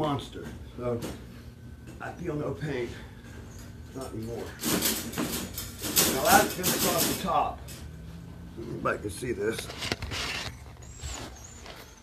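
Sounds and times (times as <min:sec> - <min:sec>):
high-pitched squeaks: 0:09.7 - 0:12.0.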